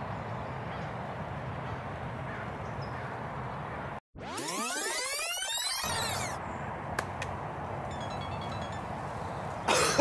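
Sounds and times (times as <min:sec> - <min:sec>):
rising sound effect glide: 0:04.2 - 0:06.4.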